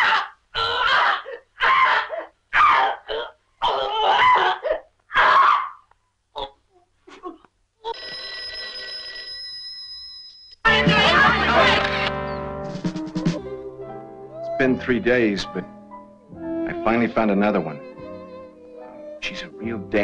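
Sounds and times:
telephone bell ringing: 7.9s - 10.8s.

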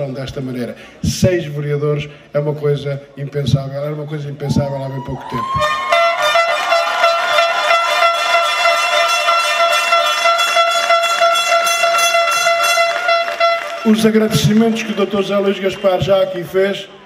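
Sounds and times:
air horn blast: 5.6s - 14.6s.

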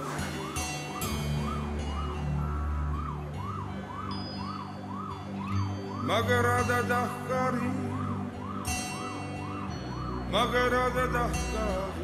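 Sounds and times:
police siren yelping: 0.0s - 12.0s.

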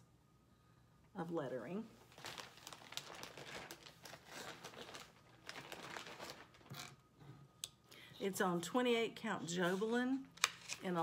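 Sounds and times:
fabric crinkling and rustling: 2.0s - 7.0s.

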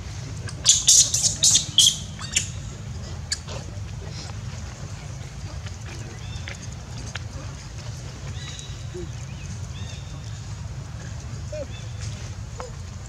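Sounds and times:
macaque screeching: 0.5s - 2.6s.

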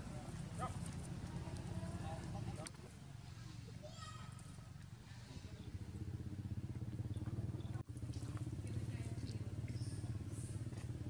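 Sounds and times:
small engine rumbling: 0.0s - 11.0s.

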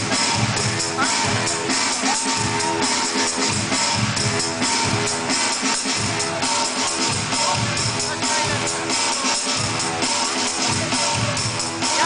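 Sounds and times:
bass: 0.0s - 12.0s
breakbeat dance music: 0.0s - 12.0s
steady drum beat: 0.0s - 12.0s.

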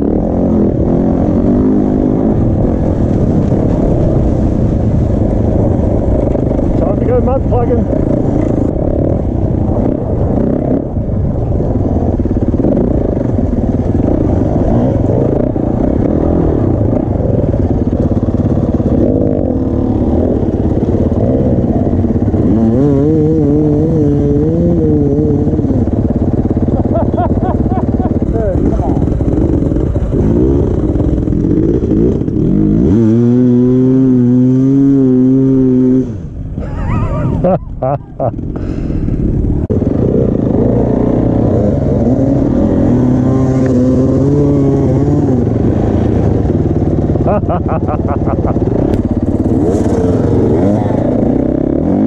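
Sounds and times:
dirt bike engine: 0.0s - 52.0s.

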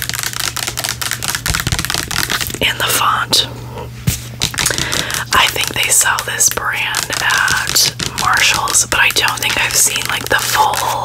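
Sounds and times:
fingernails tapping plastic bottle: 0.0s - 2.7s, 4.4s - 10.9s
steady low hum: 0.0s - 11.0s.

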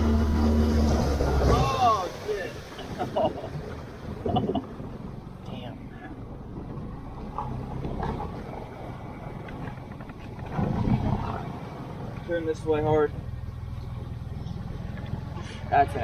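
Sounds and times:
outboard motor running: 0.0s - 16.0s
water rushing past hull: 0.0s - 16.0s.

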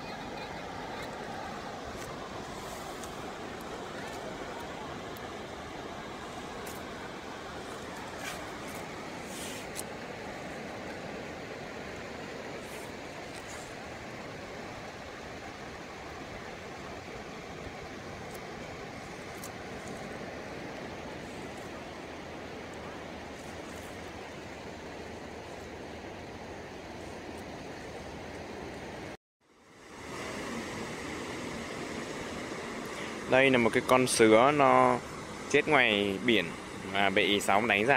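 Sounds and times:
surf rushing on beach: 0.0s - 37.9s.

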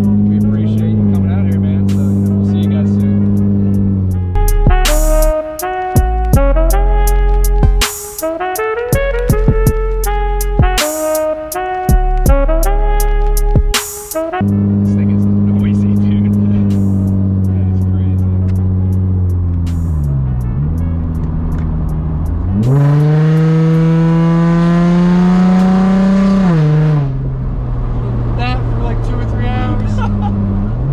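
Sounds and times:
car engine revving in cabin: 0.0s - 5.4s, 12.0s - 30.9s.

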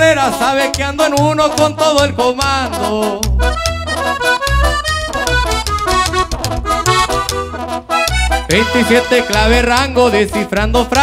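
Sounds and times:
accordion playing quick melody: 0.0s - 11.0s
pulsing bass line: 0.0s - 11.0s.

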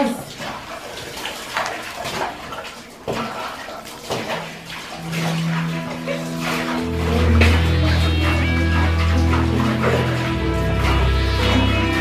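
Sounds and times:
water splashing: 0.0s - 12.0s
low held music tones: 4.4s - 12.0s.

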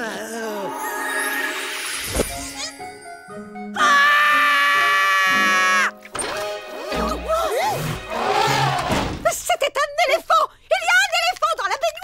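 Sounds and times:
cartoon character screaming: 3.8s - 5.9s.

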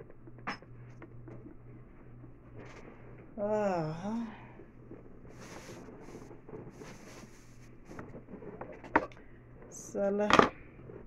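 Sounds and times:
low electrical hum: 0.0s - 11.0s
faint handling and rustling: 4.2s - 11.0s.

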